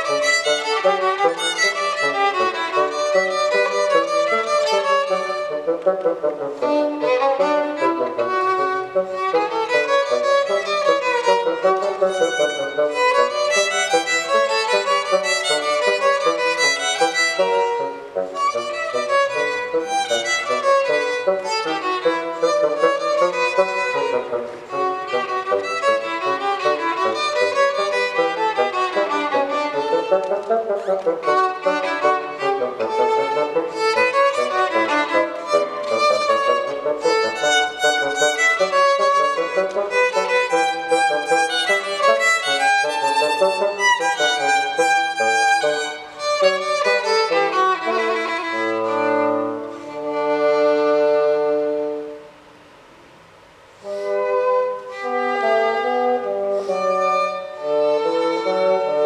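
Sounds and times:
bassoon: 0.0 - 52.5, 53.8 - 59.0
violin: 0.0 - 52.5, 53.8 - 59.0.

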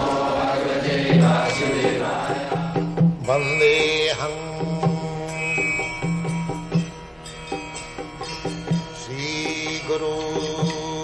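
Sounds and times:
steady drone: 0.0 - 3.5
man singing a prayer: 1.1 - 5.9, 9.0 - 11.0.

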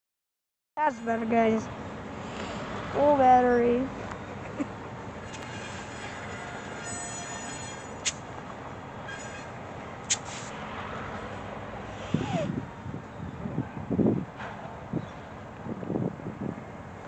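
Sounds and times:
high-pitched train squeals: 5.3 - 8.2, 9.0 - 9.6.

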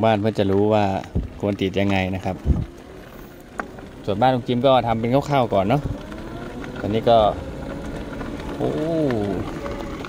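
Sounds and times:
small vehicle rolling on dirt road: 0.0 - 10.0.

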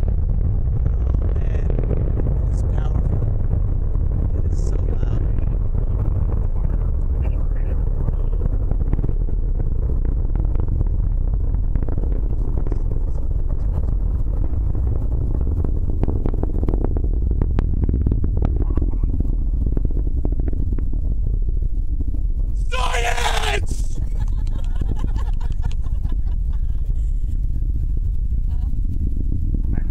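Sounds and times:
distant rocket engine rumble: 0.0 - 29.9.

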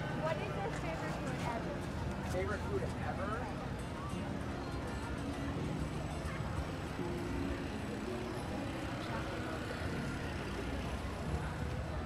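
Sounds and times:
people talking: 0.0 - 12.0
road traffic rumble: 0.0 - 12.0.

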